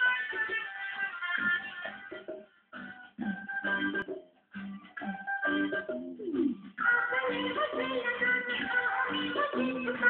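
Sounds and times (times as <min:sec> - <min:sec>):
recorded music over loudspeaker: 0:00.0 - 0:10.0.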